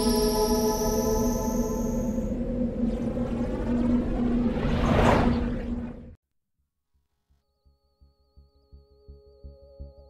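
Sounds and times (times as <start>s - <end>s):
faint higher tones: 0.0s - 4.6s
low synth drone: 0.0s - 6.2s
rush of noise: 1.7s - 6.2s.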